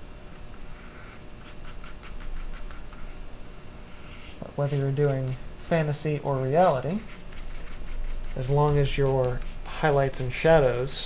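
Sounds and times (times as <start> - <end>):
scratchy brush strokes: 0.3 - 3.2, 3.9 - 10.9
paintbrush dabbing: 6.6 - 10.8.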